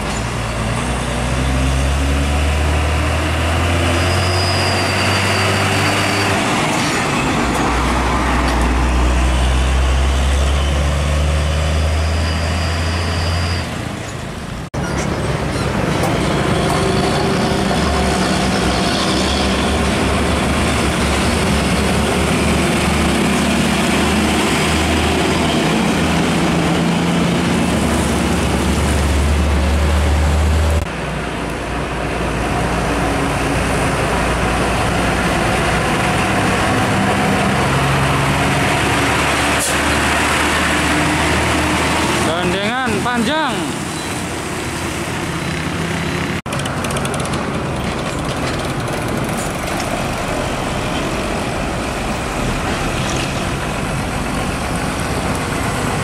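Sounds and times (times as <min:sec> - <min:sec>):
truck diesel engine running hard: 0:00.0 - 0:56.0.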